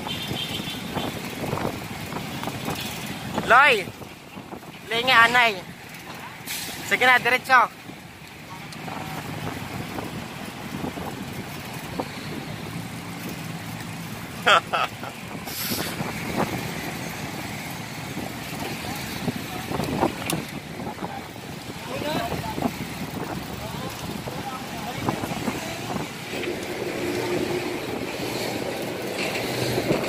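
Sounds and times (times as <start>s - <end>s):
wind noise: 0.0s - 7.0s, 7.7s - 30.0s
road traffic hum: 0.0s - 30.0s
voices: 18.4s - 27.7s.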